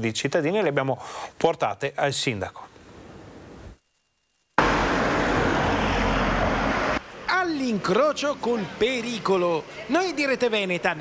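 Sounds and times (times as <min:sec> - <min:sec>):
faint room hiss: 0:00.0 - 0:04.6
street traffic noise: 0:04.6 - 0:11.0.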